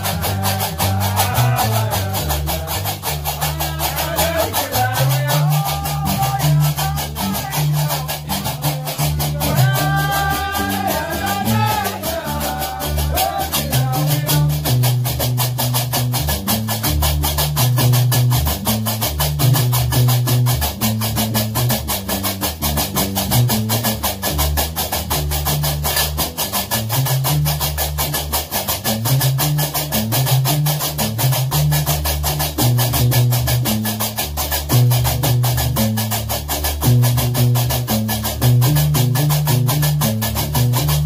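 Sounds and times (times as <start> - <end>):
person singing: 0.0 - 14.7
plucked bass lute: 0.0 - 41.0.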